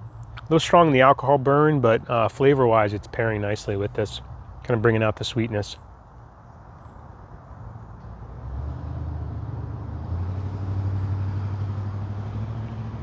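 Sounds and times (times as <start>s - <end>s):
low engine hum: 0.0s - 13.0s.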